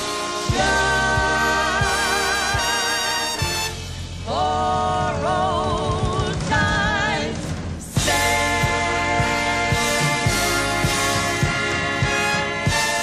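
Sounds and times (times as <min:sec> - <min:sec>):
band with drum hits: 0:00.0 - 0:13.0
women singing in harmony: 0:00.3 - 0:03.6, 0:04.2 - 0:13.0.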